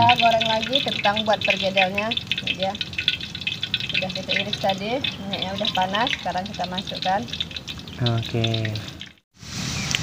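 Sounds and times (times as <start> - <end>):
hot oil crackling and spitting: 0.0 - 10.0.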